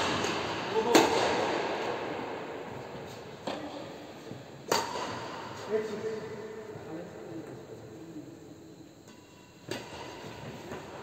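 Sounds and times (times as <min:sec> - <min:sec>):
badminton racket hitting shuttlecock: 0:04.7 - 0:05.2.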